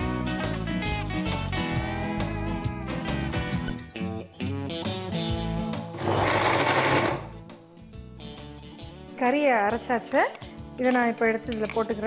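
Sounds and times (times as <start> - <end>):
background music: 0.0 - 12.0
electric mixer grinder whirring: 6.0 - 7.4.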